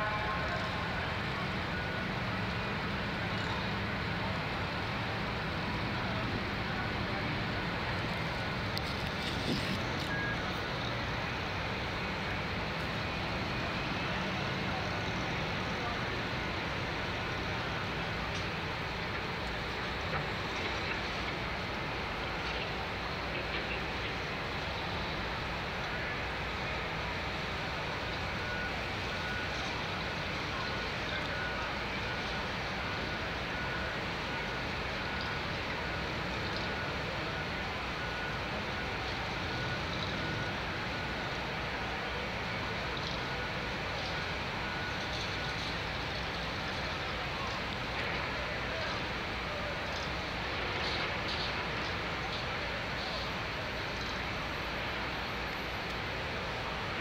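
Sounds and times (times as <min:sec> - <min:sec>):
crowd noise: 0:00.0 - 0:26.8, 0:27.4 - 0:57.0
street traffic: 0:00.0 - 0:57.0.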